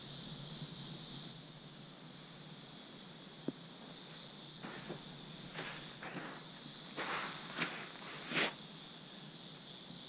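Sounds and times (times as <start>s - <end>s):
steady high hiss: 0.0s - 10.0s
sand and gravel crunching: 3.9s - 8.6s
gravel scrape: 4.6s - 8.6s.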